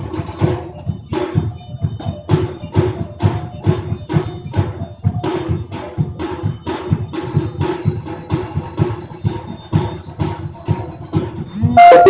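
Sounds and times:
drums beating fast rhythm: 0.0s - 12.0s
held tone: 11.5s - 12.0s.

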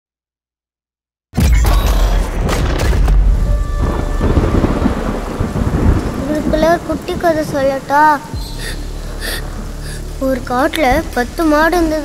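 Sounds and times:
thunder rumbling: 1.9s - 12.0s
heavy steady rain: 3.1s - 12.0s.

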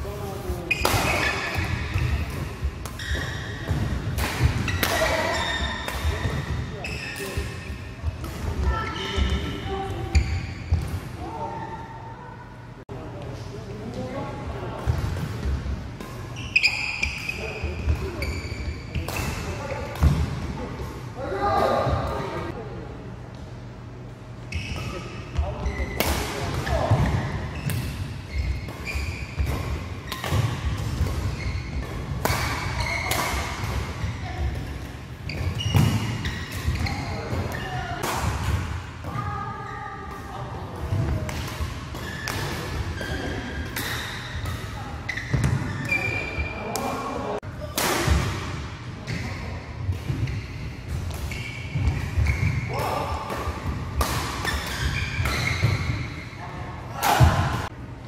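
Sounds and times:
shoes squeaking on court: 0.6s - 3.8s, 4.6s - 10.9s, 16.2s - 19.8s, 26.7s - 37.8s, 41.9s - 47.1s, 50.0s - 52.8s, 54.4s - 56.4s.

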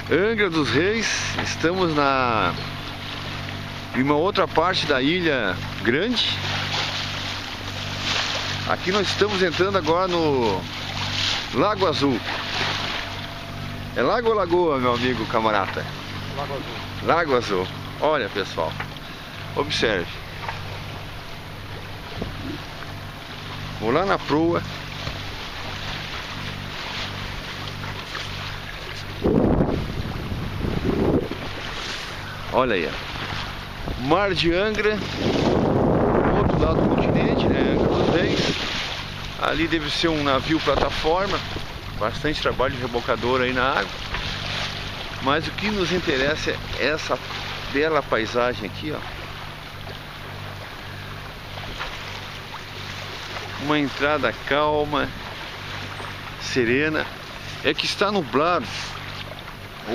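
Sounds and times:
boat engine humming: 0.0s - 59.9s
wind and water rushing: 0.0s - 59.9s
wind noise on microphone: 22.0s - 22.6s, 29.1s - 32.2s, 35.0s - 38.9s.

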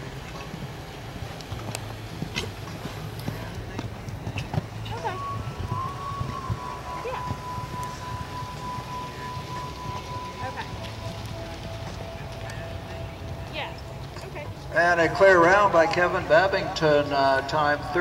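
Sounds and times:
horse hoofbeats on sand: 0.0s - 14.7s
steady high tone: 4.7s - 18.0s.

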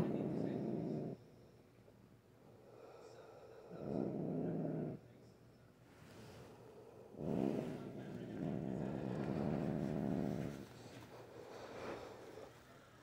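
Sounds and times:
cat growling: 0.0s - 1.2s, 3.6s - 5.0s, 6.2s - 12.5s.

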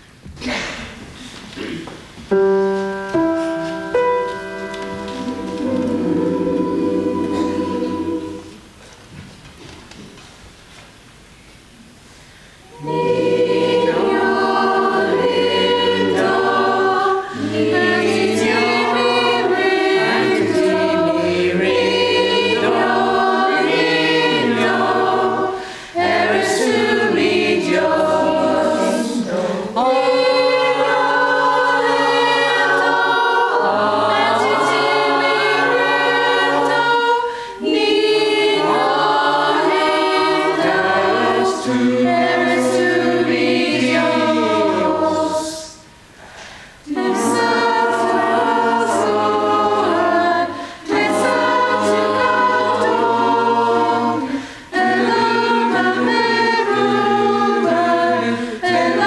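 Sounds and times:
mixed choir singing a carol: 2.3s - 9.0s, 12.5s - 59.0s.

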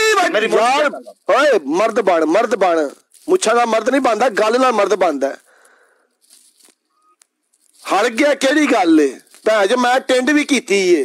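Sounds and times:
man talking: 0.0s - 5.5s, 7.8s - 11.0s.

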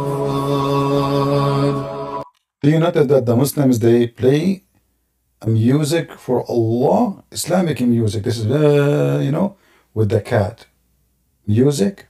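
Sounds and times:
long chanted note: 0.0s - 2.3s.

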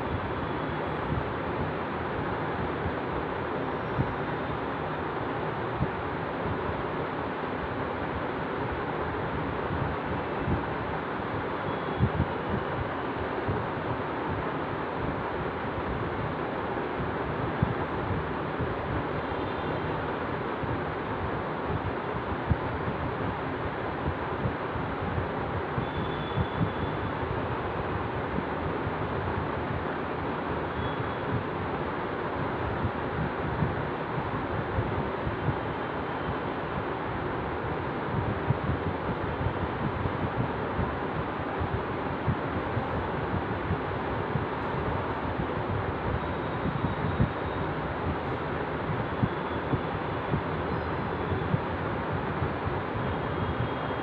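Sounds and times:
steady rushing noise: 0.0s - 54.0s.

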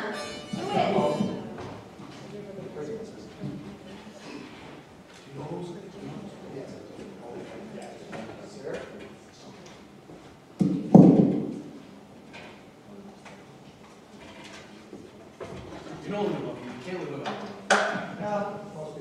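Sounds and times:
low indistinct talking: 0.0s - 4.8s.

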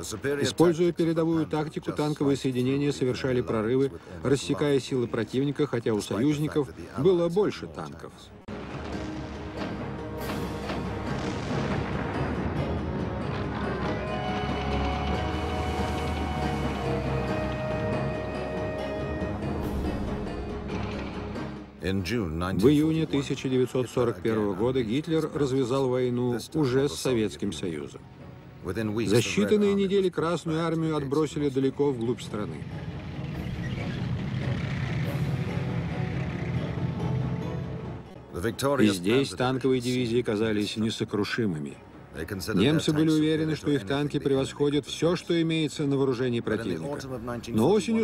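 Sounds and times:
background music long notes: 0.0s - 48.0s
tank engine rumble: 8.5s - 19.0s, 31.9s - 38.2s
tank engine rumbling: 31.5s - 38.2s.

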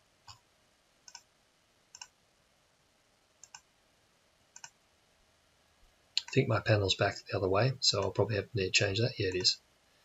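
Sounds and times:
computer mouse clicks: 1.1s - 1.3s, 1.9s - 2.1s, 3.4s - 3.6s, 4.6s - 4.8s, 6.2s - 6.4s.

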